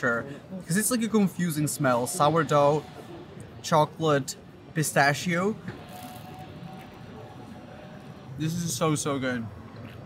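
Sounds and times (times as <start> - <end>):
city street background noise: 0.0 - 10.0.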